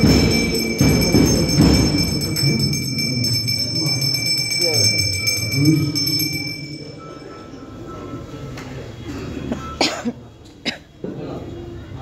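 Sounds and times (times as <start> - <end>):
bell ringing rapidly: 0.0 - 8.4
voices: 0.0 - 12.0
person coughing: 9.1 - 10.9.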